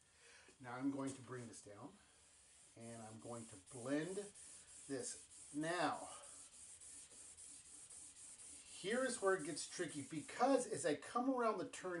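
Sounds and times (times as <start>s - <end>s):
pencil rubbing on paper: 2.2s - 10.7s.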